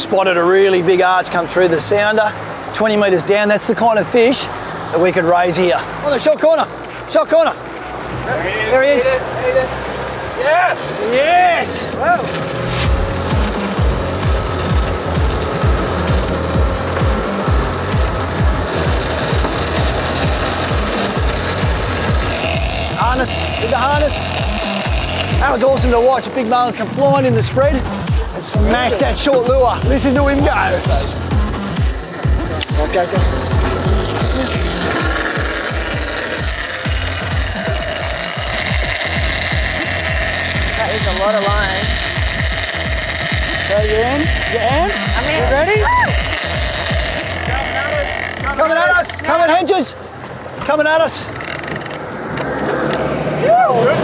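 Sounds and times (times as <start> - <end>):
fishing reel line whirring: 10.3 - 27.0, 28.8 - 49.8, 51.0 - 52.4
music with heavy low beat: 12.3 - 49.2.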